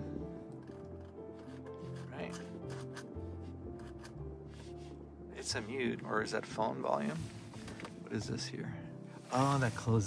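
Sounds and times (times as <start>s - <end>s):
music from car stereo: 6.6s - 8.0s.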